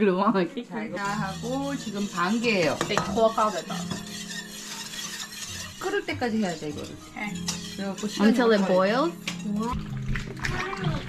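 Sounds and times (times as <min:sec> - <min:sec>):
whisk scraping metal pot: 0:00.9 - 0:11.0.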